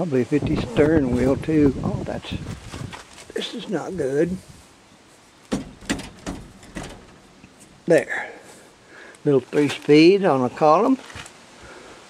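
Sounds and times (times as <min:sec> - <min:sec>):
man's voice: 0:00.0 - 0:02.4, 0:03.3 - 0:04.5
knocks and clunks of car body: 0:05.5 - 0:07.3.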